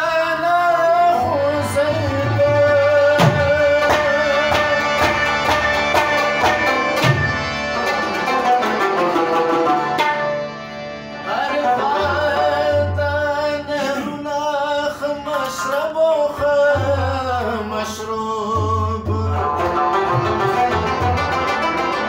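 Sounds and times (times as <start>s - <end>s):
man singing: 0.0s - 5.8s, 11.2s - 20.8s
harmonium notes: 0.0s - 22.0s
tabla rhythm: 0.0s - 22.0s
plucked lute: 1.7s - 13.2s, 15.3s - 22.0s.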